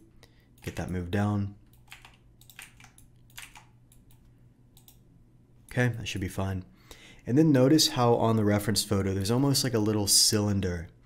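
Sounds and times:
keyboard keys tapped: 0:01.8 - 0:04.2.

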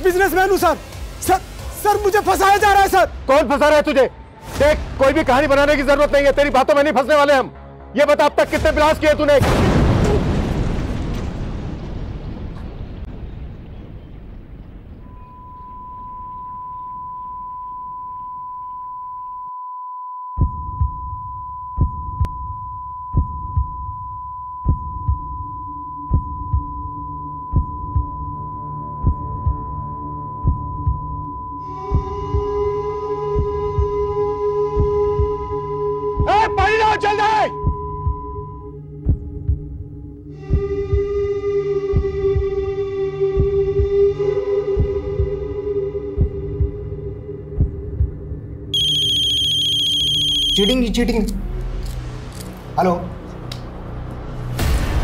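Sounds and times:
dramatic background score: 0:00.0 - 0:17.8, 0:20.4 - 0:55.0
high ringing tone: 0:15.0 - 0:20.4, 0:48.7 - 0:50.9
heartbeat low thumps: 0:20.3 - 0:36.3, 0:37.6 - 0:48.7
mobile phone ringtone: 0:48.8 - 0:50.8
man speaking: 0:50.6 - 0:51.4.

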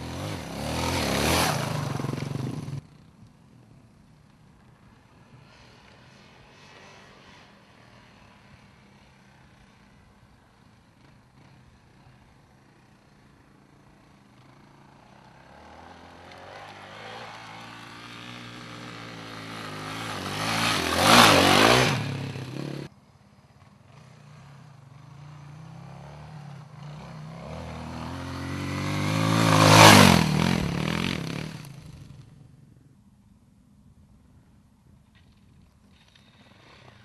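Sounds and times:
off-road motorcycles passing: 0:00.0 - 0:32.8.

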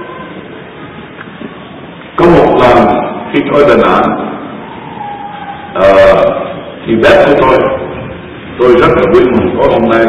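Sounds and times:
steady background hiss and rumble: 0:00.0 - 0:10.0.

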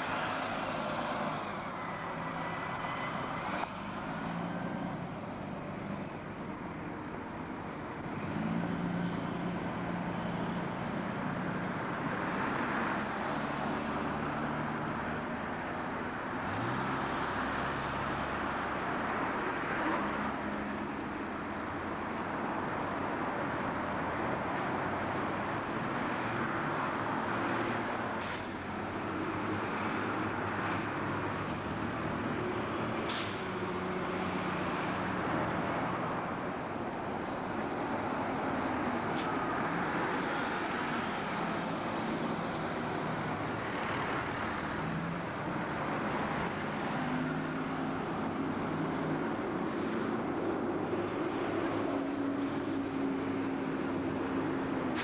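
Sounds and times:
diesel bus engines humming: 0:00.0 - 0:55.0
road traffic noise: 0:00.0 - 0:55.0.

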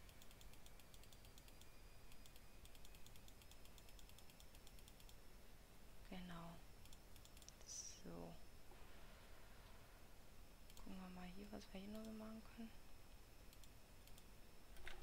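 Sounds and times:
mouse and keyboard clicking: 0:00.0 - 0:05.2, 0:06.8 - 0:07.6
wordless voice sound: 0:10.8 - 0:12.8.

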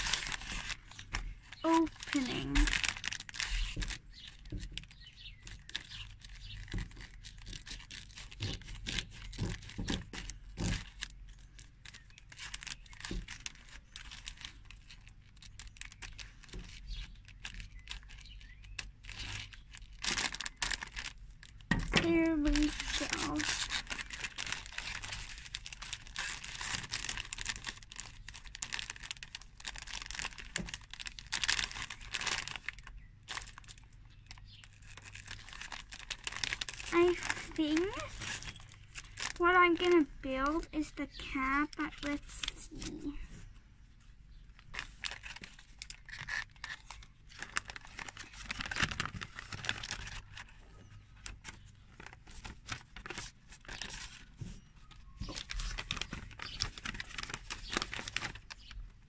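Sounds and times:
scissors cutting plastic: 0:00.0 - 0:43.2, 0:44.9 - 0:50.2, 0:55.2 - 0:58.7
plastic bag crinkling: 0:00.0 - 0:43.3, 0:44.0 - 0:59.0.

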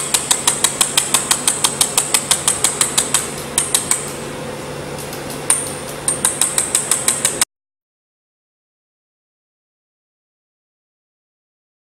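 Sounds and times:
laser welder sharp ticks: 0:00.0 - 0:04.2
machine steady hum: 0:00.0 - 0:07.5.

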